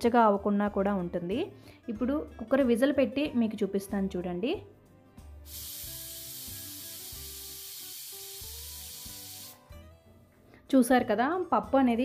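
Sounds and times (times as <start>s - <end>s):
pressure cooker steam hissing: 5.5s - 9.6s.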